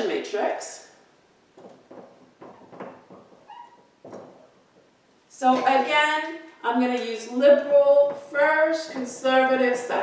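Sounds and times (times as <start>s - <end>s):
marker tip squeak: 3.4s - 3.9s.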